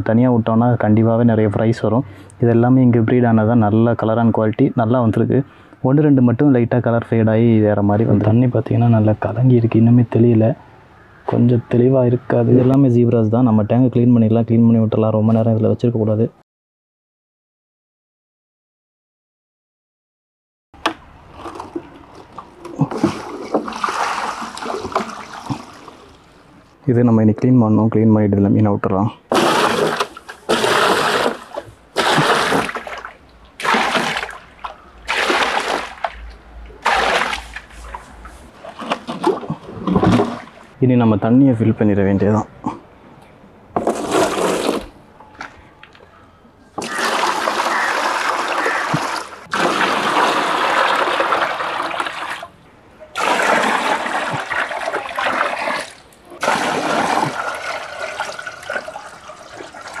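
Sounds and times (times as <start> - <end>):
water gushing into plastic tub: 21.4 - 26.2, 29.3 - 36.2, 36.8 - 40.7, 46.8 - 52.5, 53.2 - 60.0.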